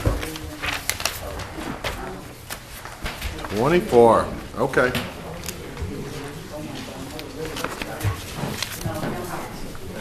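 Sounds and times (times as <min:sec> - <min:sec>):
paper rustling and page turns: 0:00.0 - 0:03.9, 0:05.3 - 0:09.6
murmuring voices: 0:00.0 - 0:10.0.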